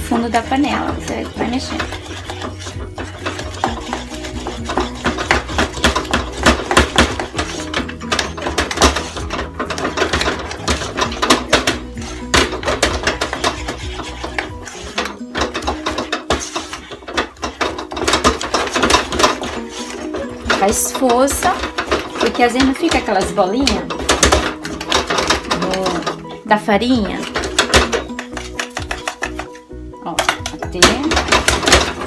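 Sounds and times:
wooden spoon beating dough in a pan: 0.0 - 32.0.

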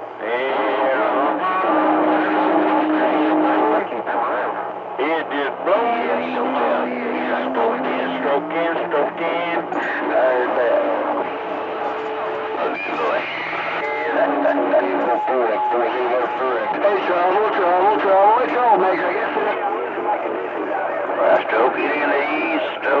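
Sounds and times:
garbled radio voices: 0.0 - 23.0
whistling radio tones: 0.2 - 23.0.

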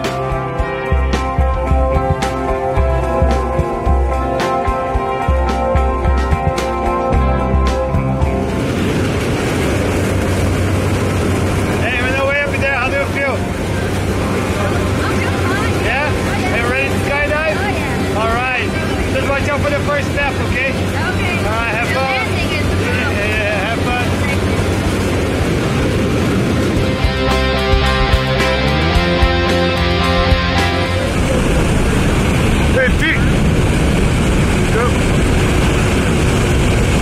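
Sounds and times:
plane engine and propeller drone: 0.0 - 37.0
wind buffeting microphone: 1.0 - 28.6, 30.0 - 37.0
raised voices talking: 11.8 - 24.9, 29.8 - 33.6.

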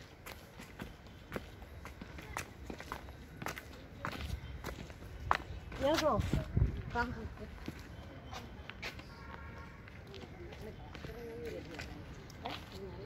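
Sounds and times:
footsteps on paved path: 0.0 - 13.0.

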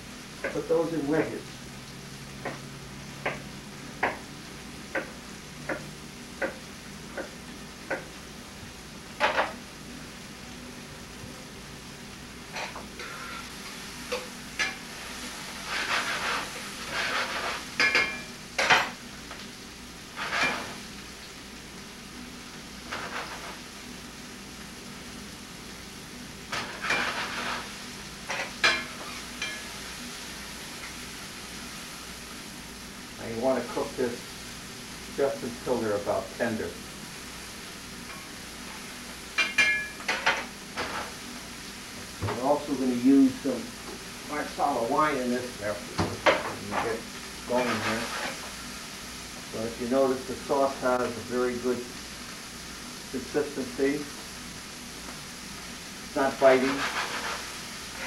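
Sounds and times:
vegetables sizzling in a pan: 0.0 - 58.0
taps on pan: 3.2 - 3.4, 4.0 - 4.2, 4.9 - 8.1
utensil stirring and scraping: 15.5 - 17.8, 46.7 - 48.5, 56.2 - 58.0.

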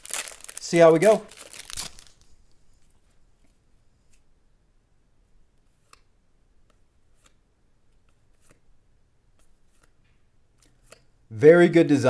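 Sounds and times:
paper cards flicking: 9.4 - 10.0.

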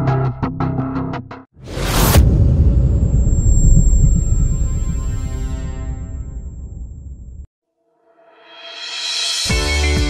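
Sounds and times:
loud whooshing hit: 1.6 - 7.5
deep steady rumble: 1.7 - 7.5.

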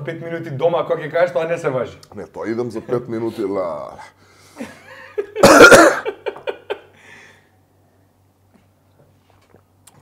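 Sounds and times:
man coughing: 5.4 - 6.2.

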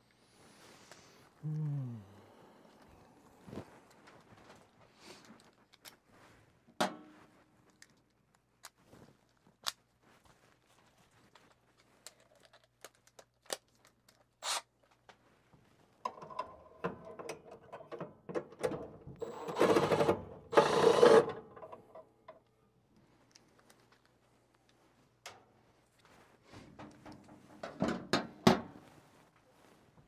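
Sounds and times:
tool handling clicks and knocks: 16.1 - 19.2, 26.6 - 28.8
cordless drill motor running: 19.2 - 21.3.

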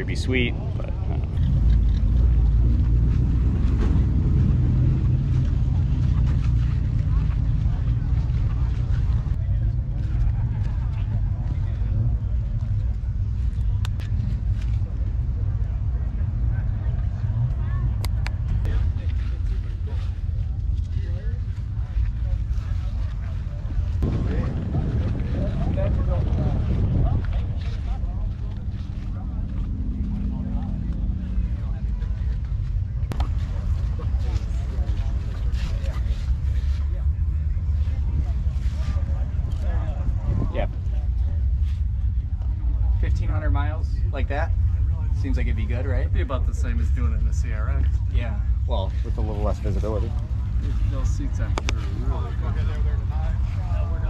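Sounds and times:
faint distant voices: 0.0 - 54.0
low outdoor rumble: 0.0 - 54.0.

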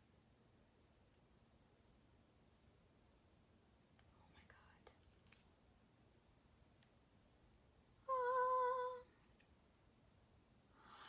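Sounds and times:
faint whisper: 4.0 - 5.1, 10.7 - 11.0.

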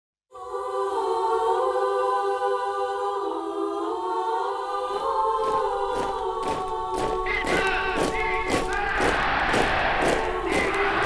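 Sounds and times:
choir holding long chords: 0.3 - 11.0
percussive hits: 5.4 - 11.0.

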